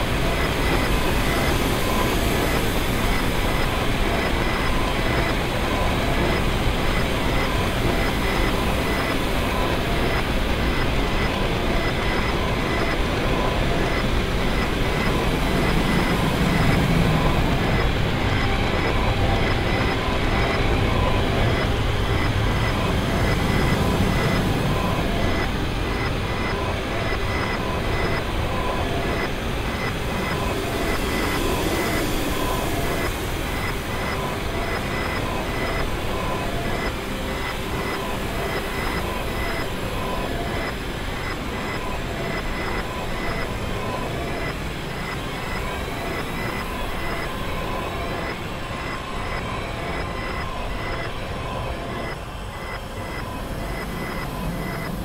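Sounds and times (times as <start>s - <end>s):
faint pulsing high tones: 0.0s - 55.0s.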